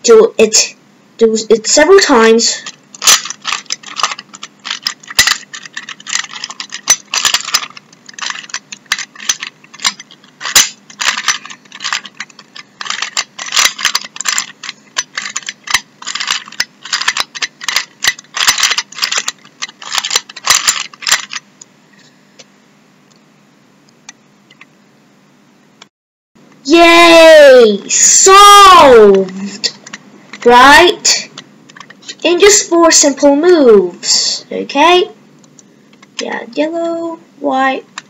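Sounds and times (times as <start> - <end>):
plastic puzzle cube clacking turns: 2.6 - 21.4, 31.7 - 32.0.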